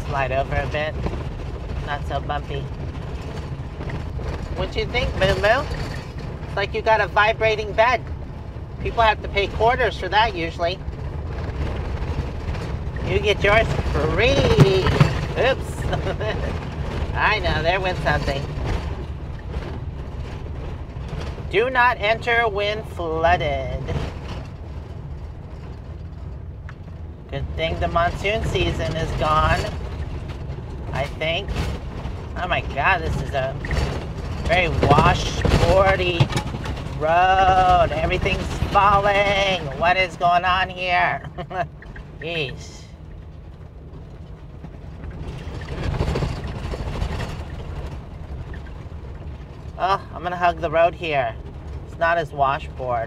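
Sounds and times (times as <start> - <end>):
rattling and clattering: 0.0 - 53.0
vehicle rumbling on dirt road: 0.0 - 53.0.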